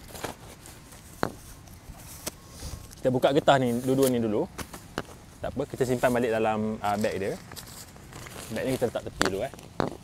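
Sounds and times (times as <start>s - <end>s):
bag rustling: 3.8s - 10.0s.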